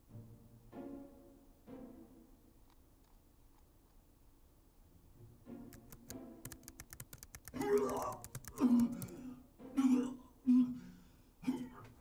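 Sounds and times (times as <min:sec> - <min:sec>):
rapid keyboard typing: 0:05.7 - 0:09.2.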